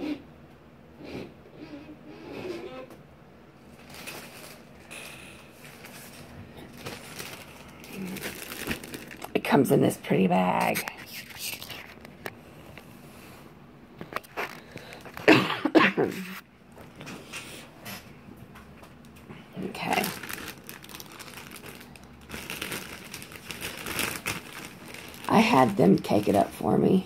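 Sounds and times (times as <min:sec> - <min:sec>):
plastic bag crinkling: 0:03.6 - 0:12.3, 0:14.0 - 0:15.4, 0:19.0 - 0:26.9.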